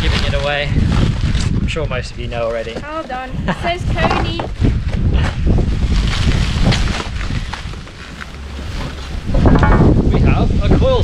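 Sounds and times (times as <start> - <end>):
wind buffeting microphone: 0.0 - 11.0
cardboard and paper rustling: 3.9 - 9.6.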